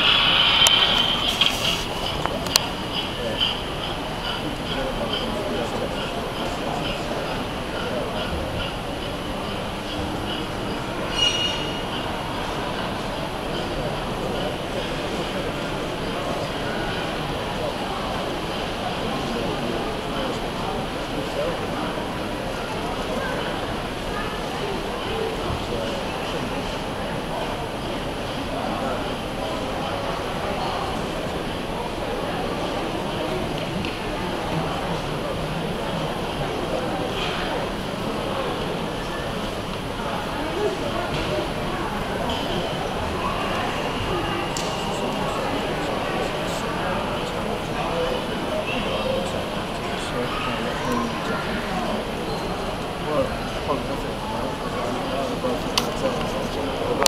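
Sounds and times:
chatter of many voices: 0.0 - 57.0
crowd talking: 0.0 - 57.0.

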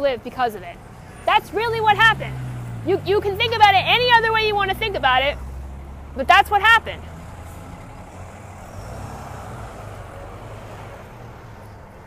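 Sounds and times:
diesel truck driving past: 0.6 - 12.0.

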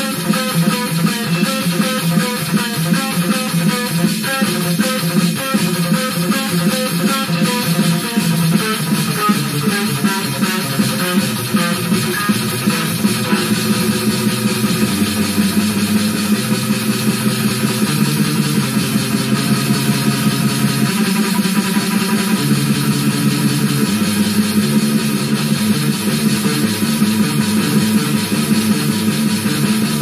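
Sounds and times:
distorted electric guitar riffs: 0.0 - 30.0
fast metal drum loop: 0.0 - 30.0.

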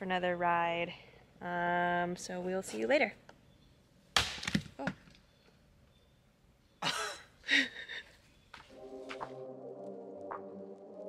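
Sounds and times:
axe chopping firewood: 4.2 - 4.7
soft music: 8.7 - 11.0.

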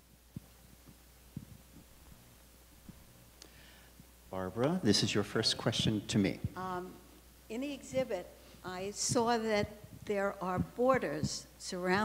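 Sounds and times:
low steady hum: 0.0 - 12.0
microphone handling thumps: 0.3 - 3.2, 7.8 - 12.0.

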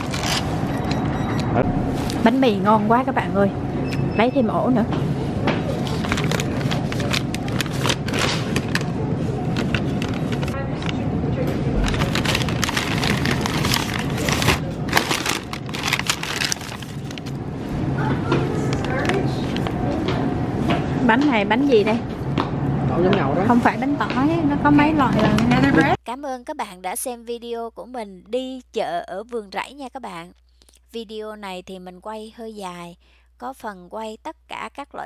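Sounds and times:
steady low hum: 0.0 - 35.0.

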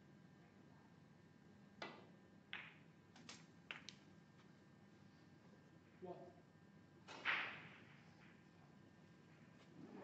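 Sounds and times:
snooker balls clicking: 1.8 - 4.5.

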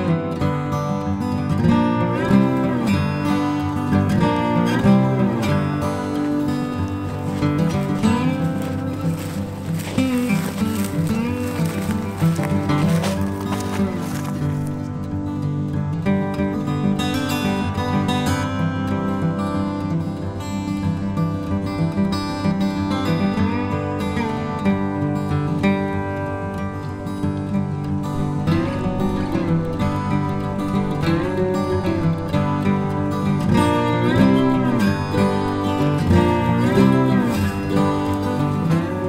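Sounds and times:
acoustic guitar music: 0.0 - 39.0.

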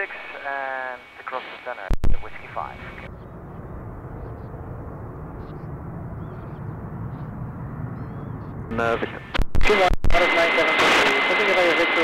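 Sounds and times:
distant jet aircraft rumble: 0.0 - 12.0
faint steady hum: 0.0 - 12.0.

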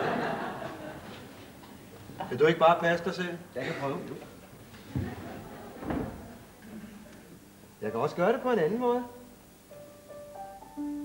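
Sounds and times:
soft keyboard notes: 7.8 - 11.0.

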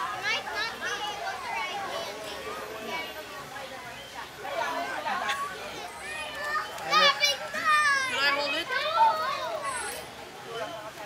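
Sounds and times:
children squealing and calling out: 4.6 - 10.6.

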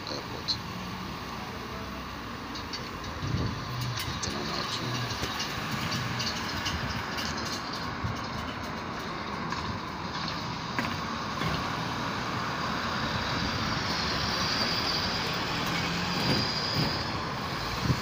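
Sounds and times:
cars driving past: 0.0 - 18.0
traffic hum: 0.0 - 18.0.

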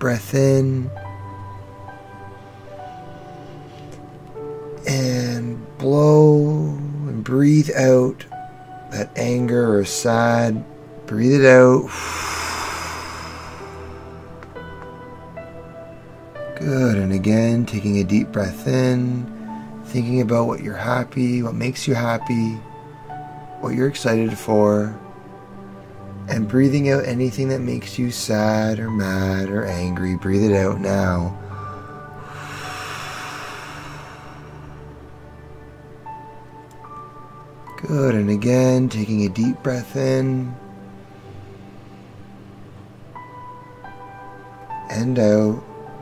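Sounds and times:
quiet background music: 0.0 - 46.0
person breathing out: 11.9 - 14.4, 31.4 - 35.0
whooshing exhale: 11.9 - 14.6, 31.4 - 35.0.

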